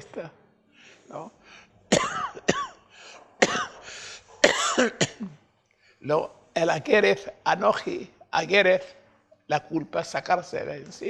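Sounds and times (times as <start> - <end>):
man clearing his throat: 1.9 - 2.7, 3.4 - 3.8, 4.4 - 5.4
man coughing: 1.9 - 2.8, 3.4 - 3.8, 4.4 - 5.4.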